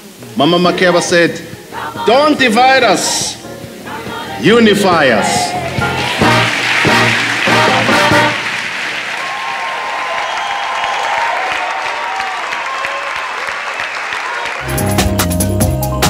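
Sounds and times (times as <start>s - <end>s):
live band music: 1.4s - 9.1s, 14.6s - 16.0s
audience applauding: 3.8s - 15.2s.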